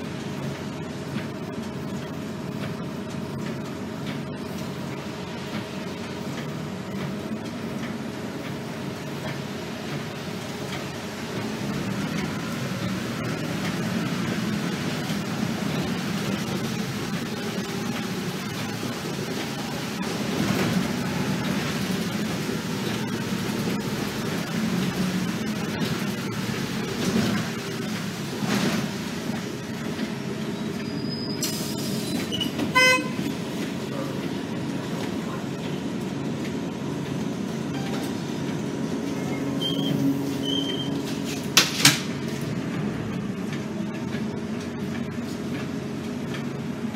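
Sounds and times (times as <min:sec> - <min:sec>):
bus engine and road rumble: 0:00.0 - 0:46.9
buzzy horn toot: 0:32.7 - 0:33.3.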